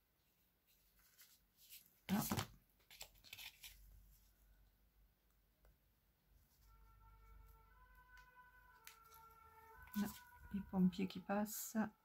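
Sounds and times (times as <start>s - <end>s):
distant fire engine siren: 6.6s - 12.0s.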